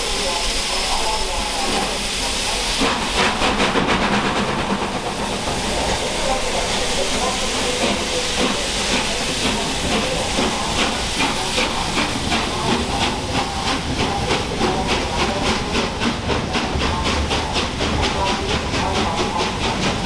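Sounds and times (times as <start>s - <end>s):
steam hissing: 0.0s - 20.0s
steam locomotive exhaust beats: 0.0s - 20.0s.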